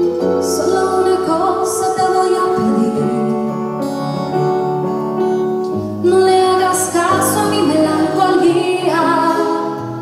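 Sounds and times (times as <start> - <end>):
live band playing a ballad: 0.0 - 10.0
woman singing: 0.2 - 3.7, 6.0 - 10.0.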